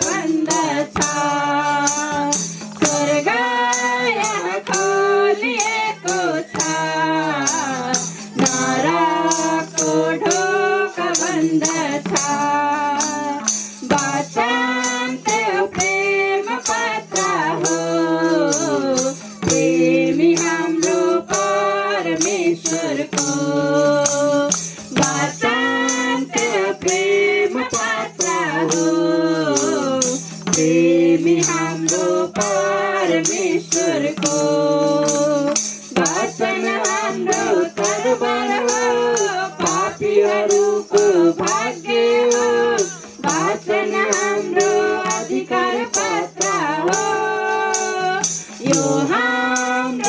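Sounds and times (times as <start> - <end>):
tambourine: 0.0 - 50.0
women singing a hymn: 0.0 - 50.0.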